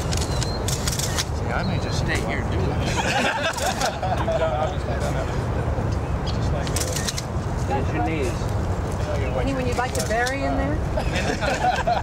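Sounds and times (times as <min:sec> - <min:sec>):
onlookers murmuring: 0:01.2 - 0:11.6.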